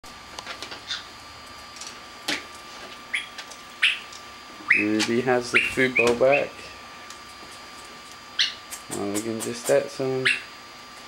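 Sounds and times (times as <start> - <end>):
parrots chirping and clicking: 3.1 - 9.6, 10.2 - 10.5.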